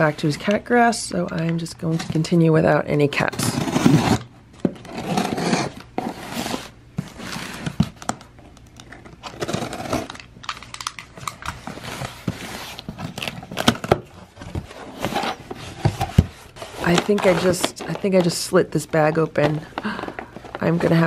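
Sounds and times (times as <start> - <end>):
cardboard box scraping and rustling: 3.4 - 7.8, 14.4 - 17.9.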